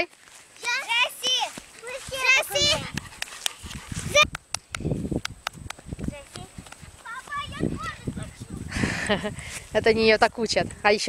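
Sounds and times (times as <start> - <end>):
sharp clicks on microphone: 2.9 - 6.8.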